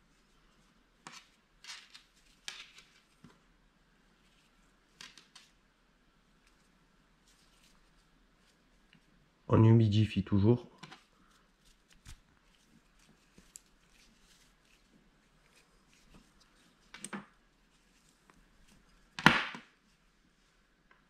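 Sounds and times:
cord rustling and ticking: 4.2 - 5.6, 10.8 - 19.2.

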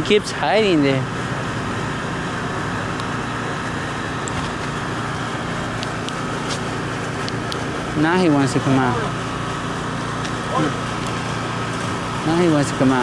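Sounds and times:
steady mechanical drone: 0.0 - 13.0.

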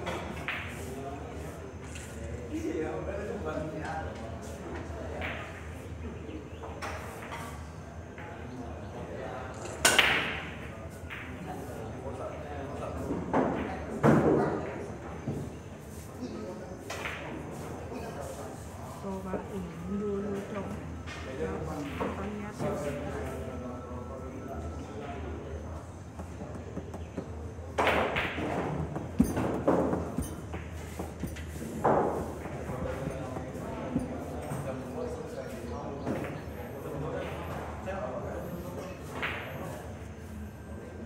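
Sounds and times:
pool balls clattering: 27.7 - 34.8.

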